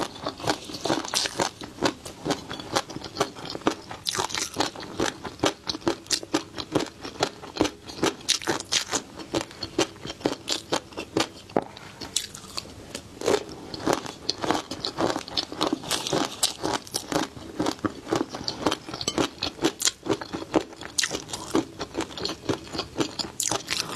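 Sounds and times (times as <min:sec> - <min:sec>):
close chewing of crunchy fish roe: 0:00.0 - 0:23.9.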